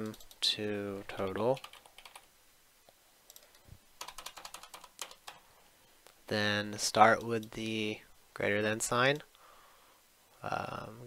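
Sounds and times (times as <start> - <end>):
typing on computer keyboard: 0.0 - 0.4, 1.2 - 2.3, 3.3 - 5.4.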